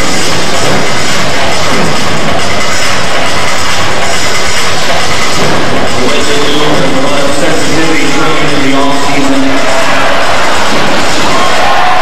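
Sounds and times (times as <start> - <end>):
distorted arena crowd roar: 0.0 - 12.0
music: 0.0 - 12.0.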